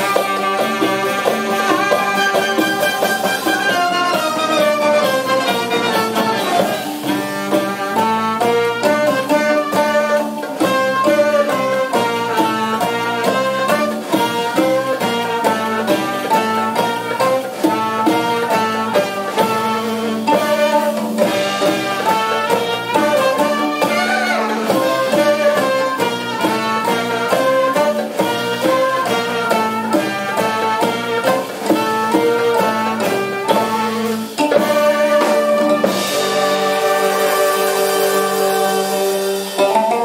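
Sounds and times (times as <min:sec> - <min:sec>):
bowed violin: 0:00.0 - 0:40.0
clarinet melody: 0:00.0 - 0:40.0
plucked oud: 0:39.6 - 0:40.0.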